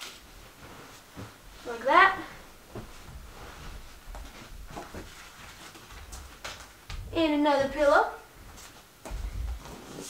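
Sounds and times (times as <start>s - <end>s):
bedding rustling: 0.0s - 10.0s
soft bumps of pillows: 0.1s - 7.8s.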